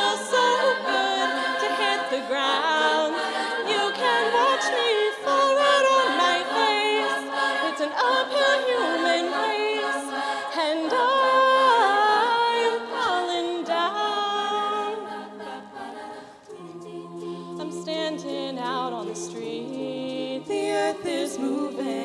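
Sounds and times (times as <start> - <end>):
women singing a cappella in harmony: 0.0 - 22.0.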